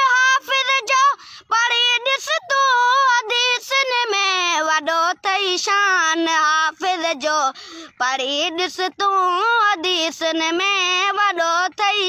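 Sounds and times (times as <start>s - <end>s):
boy singing unaccompanied: 0.0s - 12.0s
breath: 1.2s - 1.5s, 7.5s - 8.0s.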